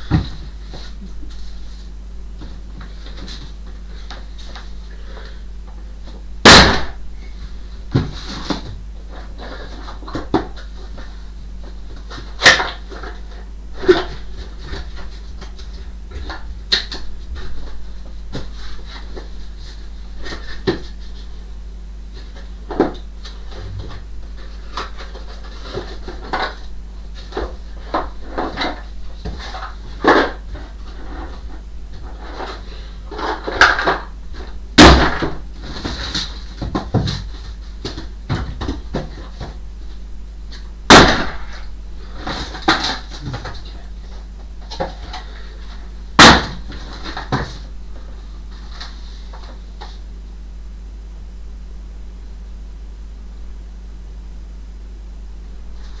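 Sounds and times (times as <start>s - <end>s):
steady low hum: 0.0s - 56.0s
items knocking in wooden wardrobe: 34.8s - 39.6s.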